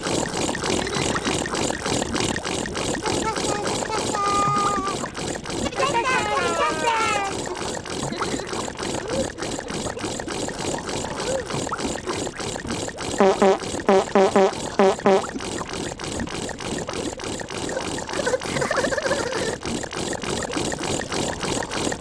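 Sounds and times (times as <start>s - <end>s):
machine rhythmic pumping hiss: 0.0s - 22.0s.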